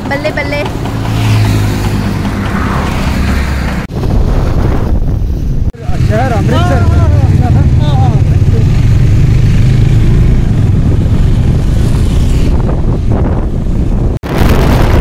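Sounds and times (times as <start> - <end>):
motorcycle engine drone: 0.0 - 15.0
wind buffeting microphone: 1.4 - 5.8, 8.8 - 15.0
man calling out: 5.8 - 8.6.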